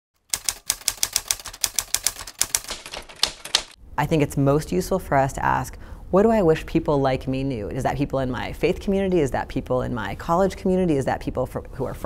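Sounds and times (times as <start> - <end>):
typewriter keystrokes: 0.2 - 3.8.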